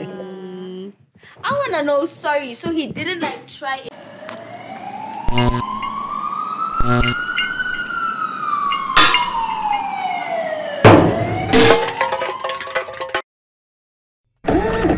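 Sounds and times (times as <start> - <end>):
siren wailing: 4.0 - 12.6
sharp hits: 8.7 - 9.8, 10.8 - 13.2.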